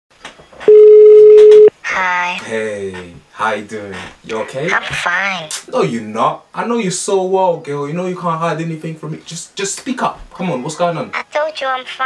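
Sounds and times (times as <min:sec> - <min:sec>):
telephone ringback tone: 0:00.7 - 0:01.7.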